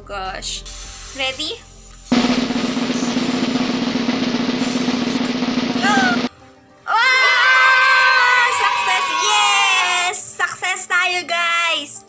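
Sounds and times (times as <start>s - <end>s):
snare drum roll: 2.1s - 6.3s.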